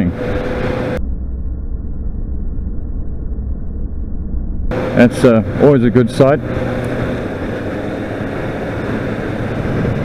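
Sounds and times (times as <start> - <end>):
muffled motorcycle engine rumble: 0.0 - 10.0.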